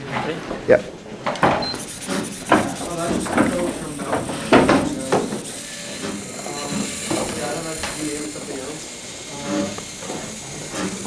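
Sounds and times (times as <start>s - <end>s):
robot motors whining: 1.4s - 11.0s.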